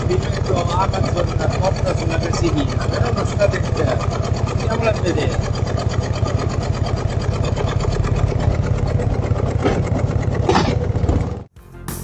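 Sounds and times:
motorcycle engine idling: 0:00.0 - 0:11.5
music: 0:11.5 - 0:12.0.

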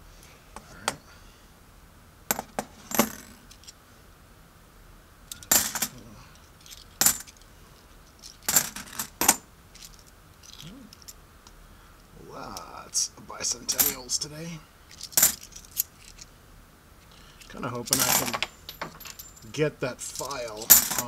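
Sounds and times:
coins clinking: 0:05.3 - 0:07.4, 0:08.1 - 0:11.2, 0:13.6 - 0:14.2, 0:14.9 - 0:16.3, 0:17.2 - 0:21.0.

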